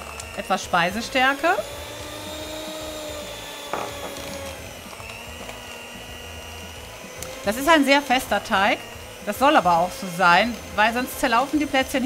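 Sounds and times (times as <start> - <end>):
electric hand mixer whining: 0.0 - 12.0.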